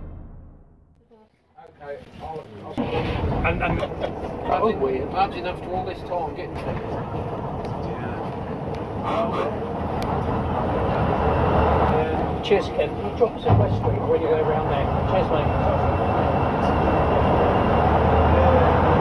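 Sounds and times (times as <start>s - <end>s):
passengers chatting: 1.1s - 19.0s
bus diesel engine running: 2.8s - 19.0s.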